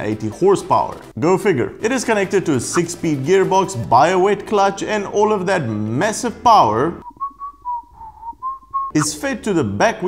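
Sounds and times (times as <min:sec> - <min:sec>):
person whistling: 0:07.0 - 0:09.1.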